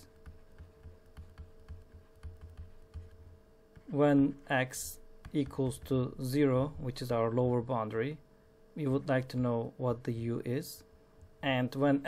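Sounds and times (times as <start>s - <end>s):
faint steady hum: 0.0s - 12.0s
stylus tapping on drawing tablet: 0.1s - 3.9s, 5.2s - 6.0s.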